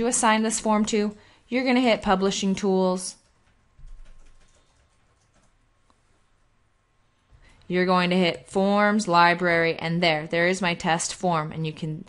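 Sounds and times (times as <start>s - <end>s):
faint keyboard and mouse clicks: 3.1s - 6.0s.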